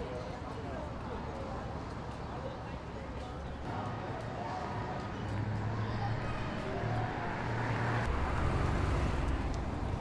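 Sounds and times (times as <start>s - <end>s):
city street traffic: 0.0s - 10.0s.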